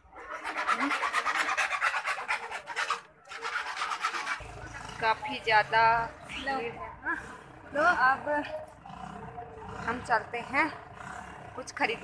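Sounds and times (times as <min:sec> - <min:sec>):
rasping rub on microphone: 0:00.3 - 0:04.5.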